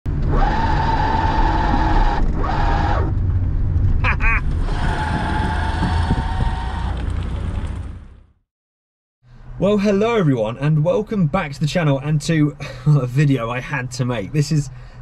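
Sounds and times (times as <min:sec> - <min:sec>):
low road rumble: 0:00.1 - 0:08.5
person laughing: 0:04.0 - 0:04.5.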